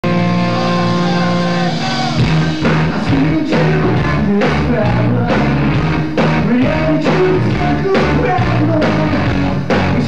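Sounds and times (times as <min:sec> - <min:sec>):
electric guitars sustained chord: 0:00.0 - 0:03.1.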